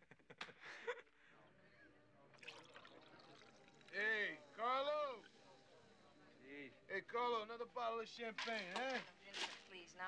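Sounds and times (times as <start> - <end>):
champagne pouring into glass: 2.4 - 4.4.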